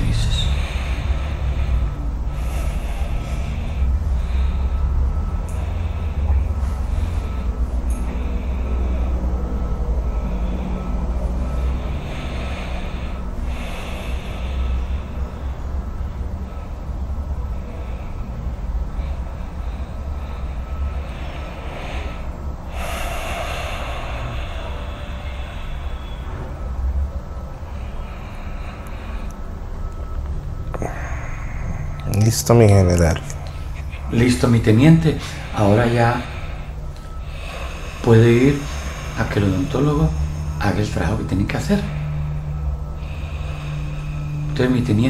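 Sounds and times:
low background rumble: 0:00.0 - 0:45.0
person breathing: 0:00.0 - 0:45.0.

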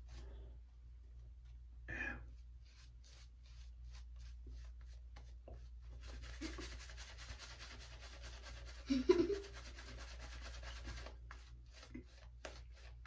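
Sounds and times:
shaving brush rubbing strokes: 0:02.4 - 0:13.0.

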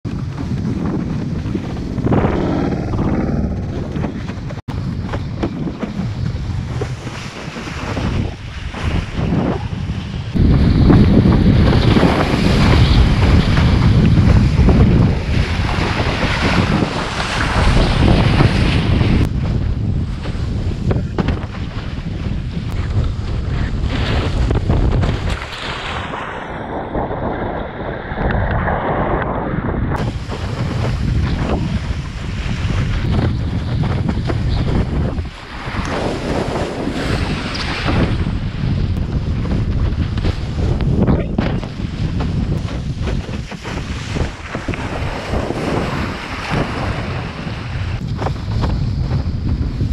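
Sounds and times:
wind buffeting microphone: 0:00.0 - 0:49.9
water rushing and splashing: 0:00.1 - 0:29.3, 0:29.9 - 0:48.2.

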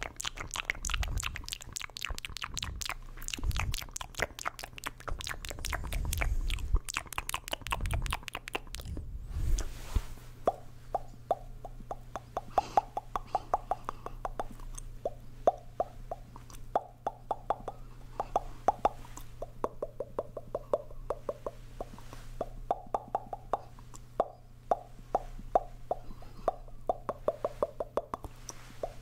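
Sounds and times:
mouth pops into cupped hands: 0:00.2 - 0:09.0, 0:10.5 - 0:29.0.

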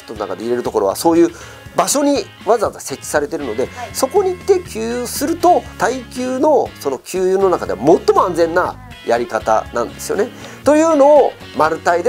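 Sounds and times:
background music: 0:00.0 - 0:12.0
man speaking: 0:00.6 - 0:12.0.

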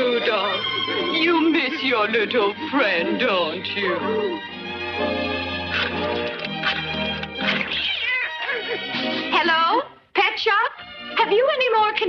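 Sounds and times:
background music: 0:00.0 - 0:12.0
cartoon cat meowing: 0:07.7 - 0:08.5.

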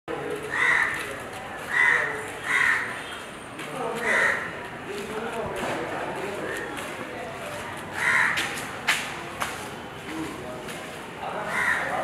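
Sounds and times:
crows cawing: 0:00.4 - 0:01.1, 0:01.7 - 0:03.1, 0:04.0 - 0:04.6, 0:08.0 - 0:08.6, 0:11.4 - 0:12.0.

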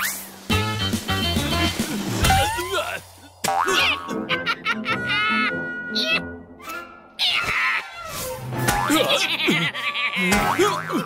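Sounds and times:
background music: 0:00.2 - 0:07.3, 0:08.0 - 0:11.0
cartoon character cry: 0:02.2 - 0:03.0, 0:05.1 - 0:08.0.

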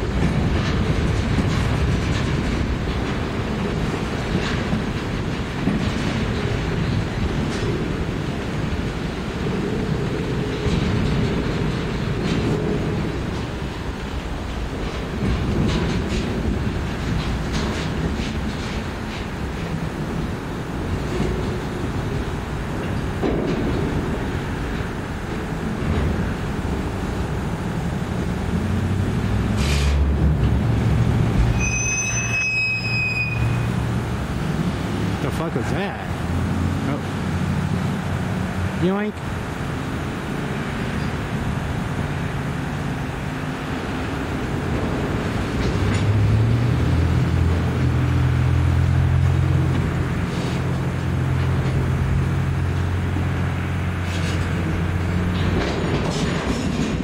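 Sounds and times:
steel wheels rumbling on rail: 0:00.0 - 0:57.0
wheels clacking over rail joints: 0:00.0 - 0:57.0
high-pitched wheel squeal: 0:31.4 - 0:33.8.

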